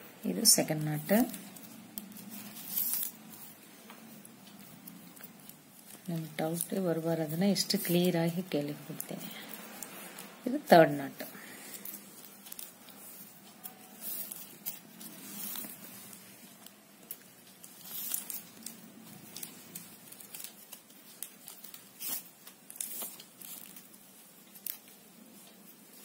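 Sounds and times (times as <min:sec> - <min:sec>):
plastic wire strands scraping: 0:00.7 - 0:26.0.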